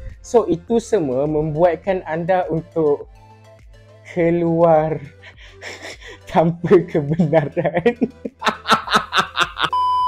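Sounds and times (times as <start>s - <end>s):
man snickering: 5.1s - 6.2s, 7.1s - 9.7s
high-pitched censor bleep: 9.7s - 10.0s.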